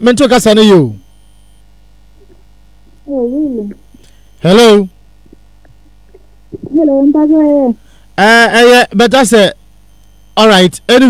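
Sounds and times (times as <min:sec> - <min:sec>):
steady low hum: 0:00.0 - 0:11.0
person wordless wavering call: 0:02.2 - 0:07.8.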